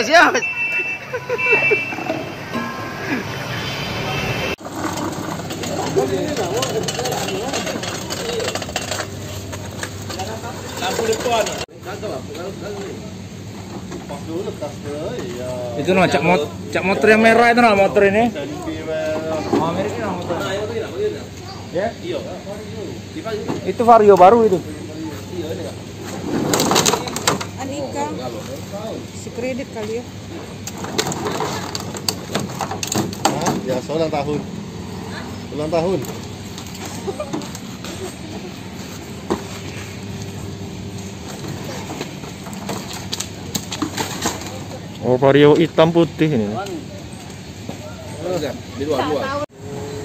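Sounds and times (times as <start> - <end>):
voices talking: 0.0 - 50.0
metal clanks and rattles: 4.6 - 11.7
scooter parts clicking and rattling: 4.6 - 11.7, 30.7 - 33.9, 41.0 - 44.8.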